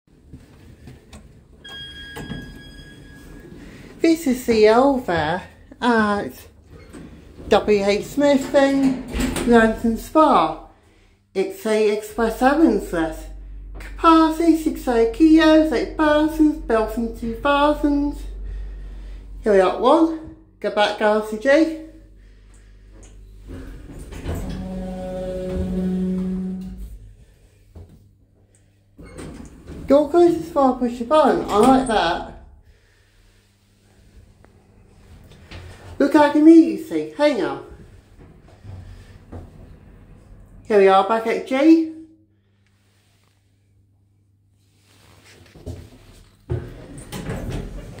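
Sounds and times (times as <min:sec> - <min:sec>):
lift machinery rumble and hum: 0:00.1 - 0:41.3
lift chime: 0:01.6 - 0:03.8
low rumble: 0:12.0 - 0:28.6, 0:37.6 - 0:40.8.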